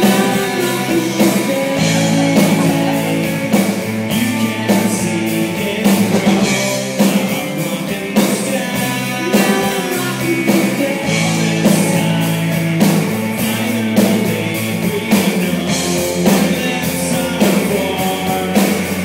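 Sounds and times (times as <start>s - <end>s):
hard drum hits: 0.0s - 7.5s
live rock band playing: 0.0s - 19.0s.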